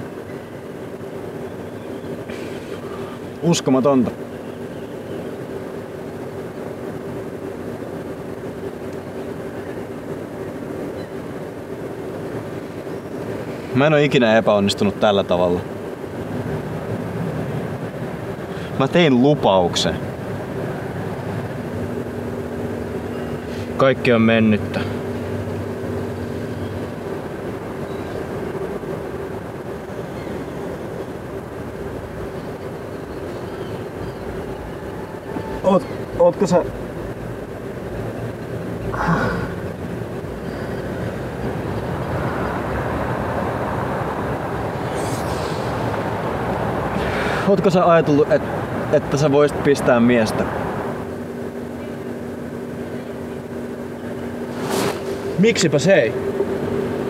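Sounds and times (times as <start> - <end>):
low droning hum: 0.0 - 49.2, 49.9 - 57.0
noisy wash: 0.0 - 57.0.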